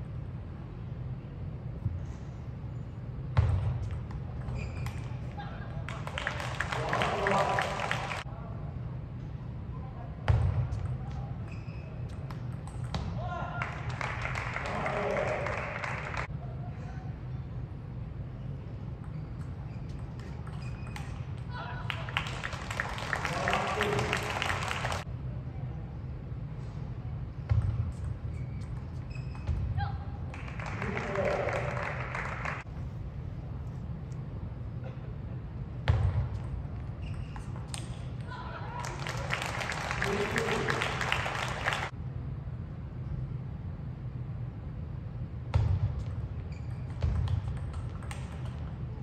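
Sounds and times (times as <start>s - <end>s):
low hall hum: 0.0s - 49.0s
crowd clapping: 5.8s - 8.3s, 13.5s - 16.3s, 21.8s - 25.1s, 30.3s - 32.7s, 38.7s - 41.9s
ball bouncing on table: 12.1s - 13.2s, 46.7s - 48.8s.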